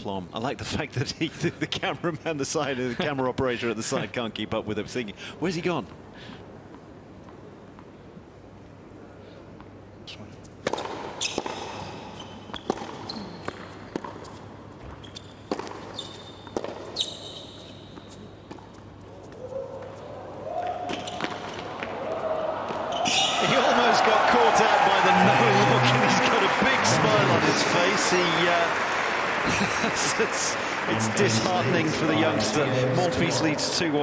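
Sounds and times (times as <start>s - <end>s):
sneaker squeaks: 10.8s - 20.1s, 20.8s - 21.9s, 22.7s - 23.4s
tennis ball bounces: 12.5s - 14.4s, 15.4s - 17.0s
crowd cheering and applauding: 21.9s - 34.0s.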